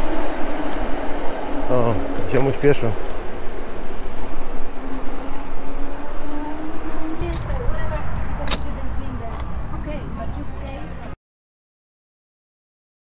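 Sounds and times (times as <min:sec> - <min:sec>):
steady motor whine: 0:00.0 - 0:11.1
wind rumbling on microphone: 0:00.0 - 0:11.2.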